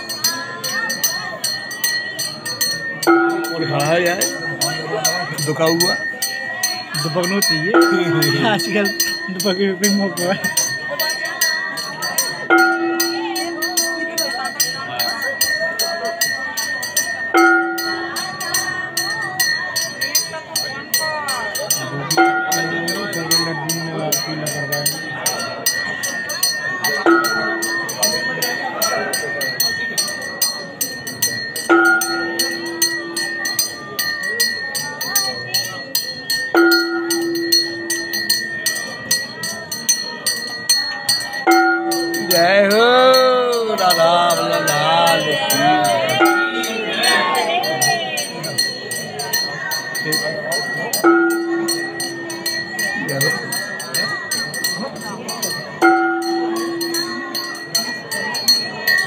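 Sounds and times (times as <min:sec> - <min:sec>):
voices chanting: 0:00.0 - 0:20.4, 0:41.1 - 0:53.5
bells and cymbals ringing rapidly: 0:00.0 - 0:59.0
deep bell ringing tone: 0:00.0 - 0:59.0.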